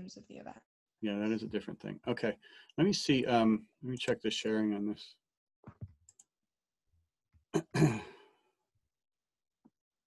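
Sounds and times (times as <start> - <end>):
person sighing: 7.6 - 8.4.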